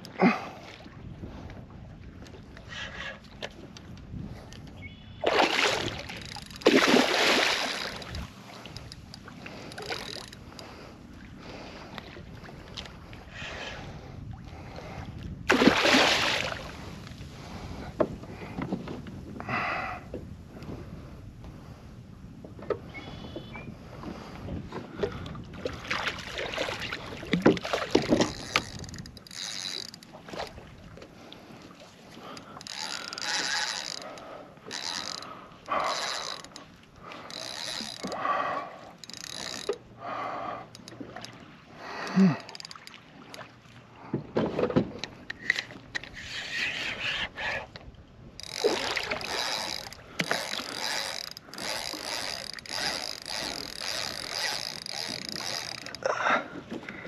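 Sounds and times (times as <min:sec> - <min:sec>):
fish splashing in water: 0:05.2 - 0:08.0, 0:15.5 - 0:16.7
fishing reel buzzing: 0:06.0 - 0:10.6, 0:28.1 - 0:30.1, 0:32.3 - 0:36.6, 0:37.2 - 0:39.8, 0:48.4 - 0:56.0.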